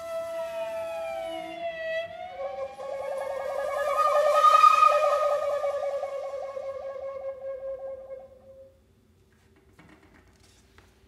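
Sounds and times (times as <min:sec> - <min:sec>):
shakuhachi and strings playing: 0:00.0 - 0:08.9
fast warbling trill: 0:00.6 - 0:07.8.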